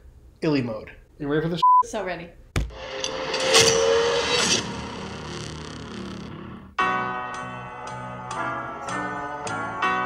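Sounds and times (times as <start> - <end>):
noisy whoosh: 2.7 - 6.8.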